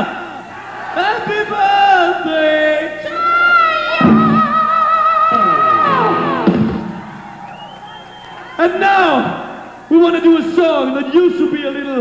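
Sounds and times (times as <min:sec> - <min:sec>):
concert crowd cheering: 0:00.0 - 0:11.4
high note with vibrato sliding down: 0:05.3 - 0:07.5.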